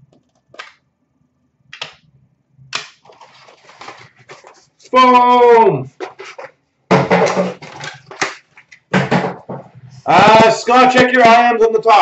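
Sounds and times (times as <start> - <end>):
packaging rustling and crinkling: 3.0 - 5.0.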